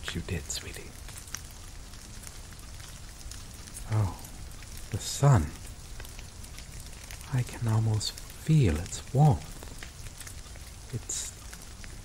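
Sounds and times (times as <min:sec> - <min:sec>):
falling rain hiss: 0:00.0 - 0:12.0.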